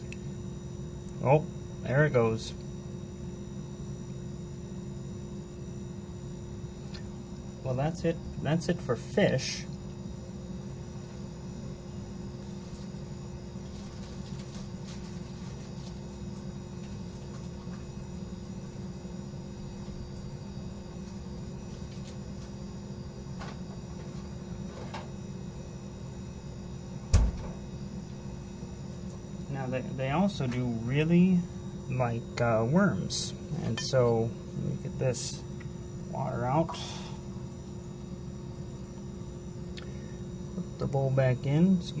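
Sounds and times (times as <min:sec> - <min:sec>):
low background hum: 0:00.0 - 0:42.0.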